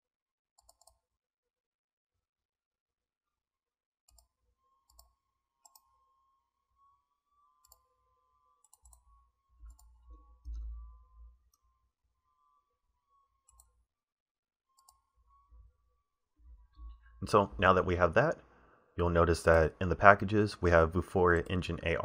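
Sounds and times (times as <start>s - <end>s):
faint high whine: 4.5s - 13.9s, 14.7s - 22.0s
faint mouse clicks: 4.9s - 5.9s.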